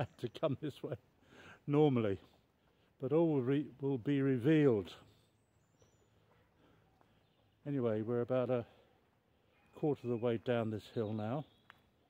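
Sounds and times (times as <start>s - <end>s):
faint high bird chirp: 4.4s - 12.0s.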